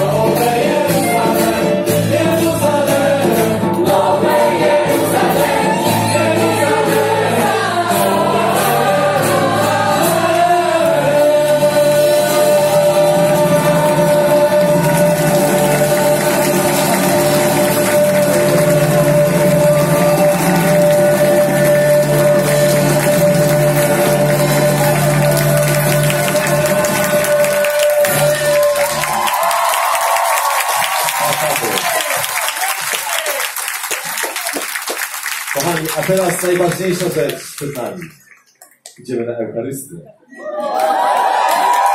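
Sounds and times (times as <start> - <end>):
live band playing worship song: 0.0 - 37.8
crowd applauding and cheering: 4.4 - 39.0, 40.4 - 41.9.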